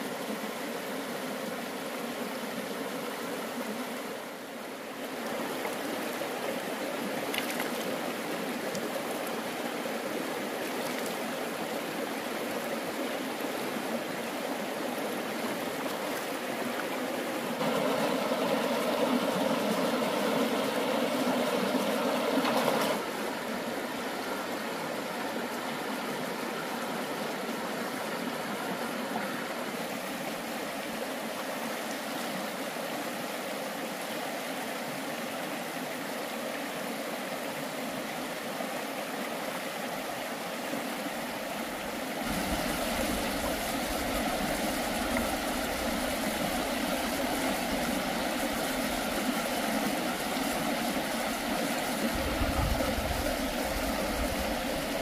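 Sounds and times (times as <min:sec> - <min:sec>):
stream running over stones: 0:00.0 - 0:55.0.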